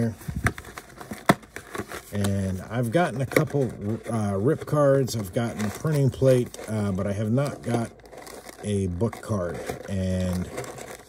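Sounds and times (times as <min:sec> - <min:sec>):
cardboard box rustling: 0:00.0 - 0:11.0.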